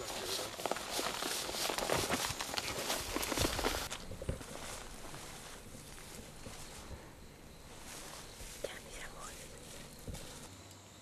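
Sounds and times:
footsteps and knocks: 0.0s - 10.6s.

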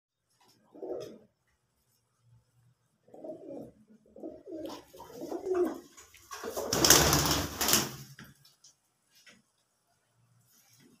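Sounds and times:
pigeons cooing: 0.6s - 1.3s, 3.0s - 6.7s
loud rustling noise: 6.2s - 8.2s.

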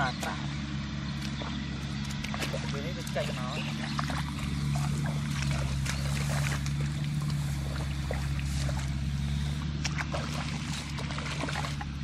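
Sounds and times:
tractor engine droning: 0.0s - 12.0s
footsteps splashing in shallow water: 1.1s - 12.0s.

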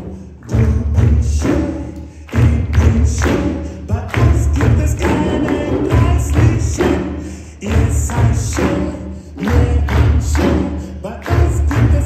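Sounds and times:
audience clapping along: 0.0s - 12.0s
djembe hand-drumming: 0.5s - 12.0s.

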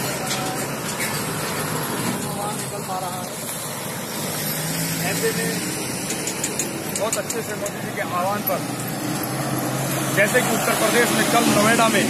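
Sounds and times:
road traffic rush: 0.0s - 12.0s.

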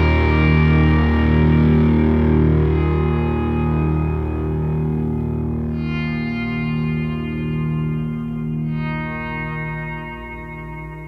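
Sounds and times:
distorted electric guitar chords: 0.0s - 11.0s.

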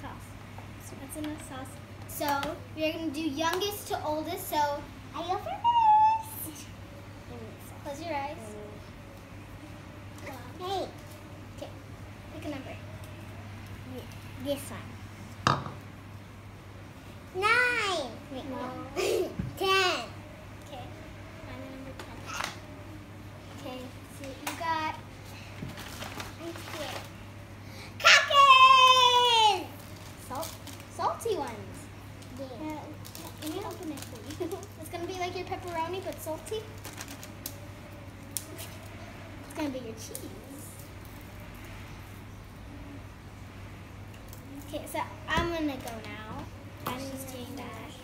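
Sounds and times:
steady low hum: 0.0s - 48.0s
child murmuring: 5.3s - 6.7s
ceramic bowl set down on wood: 15.4s - 15.8s.

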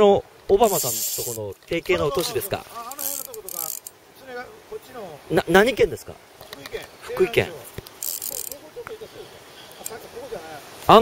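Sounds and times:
fishing reel ticking: 0.6s - 1.6s, 2.2s - 4.0s, 7.8s - 8.6s.

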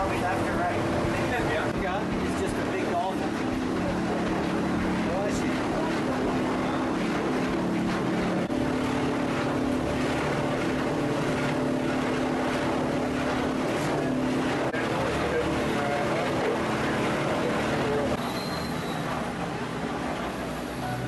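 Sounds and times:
motorboat engines running: 0.0s - 21.0s.

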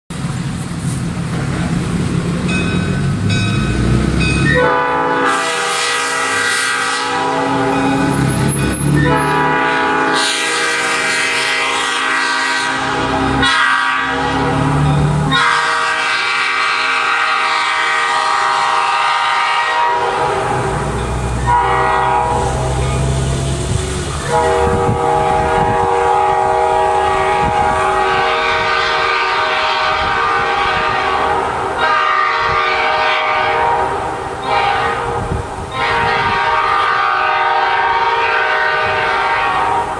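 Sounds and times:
locomotive horn blasts: 4.4s - 39.9s.

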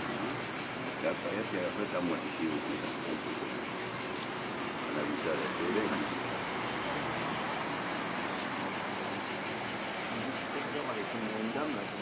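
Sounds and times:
cicadas buzzing: 0.0s - 12.0s.

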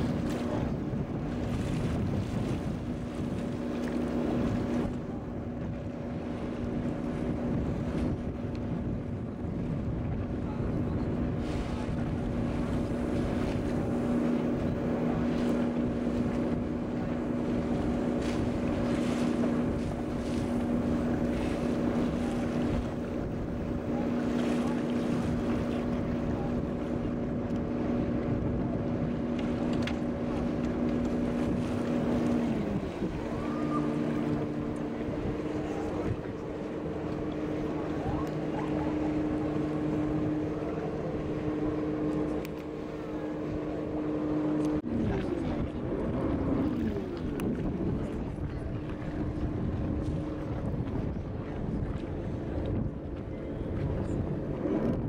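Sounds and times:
boat engine running: 0.0s - 55.0s
water washing past hull: 0.0s - 55.0s
wind buffeting microphone: 0.0s - 55.0s.

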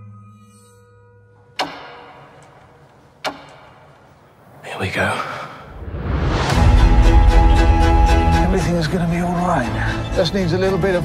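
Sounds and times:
sharp percussive hit: 1.6s - 4.2s.

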